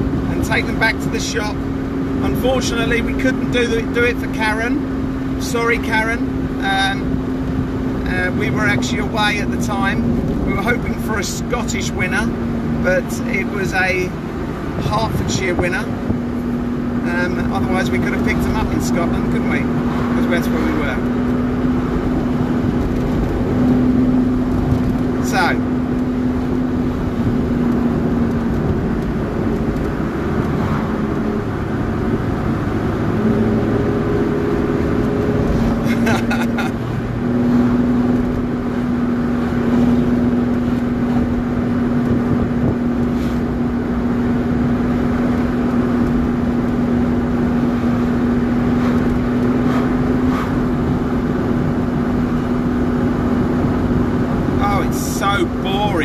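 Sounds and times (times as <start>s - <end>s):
car engine and road noise: 0.0s - 56.0s.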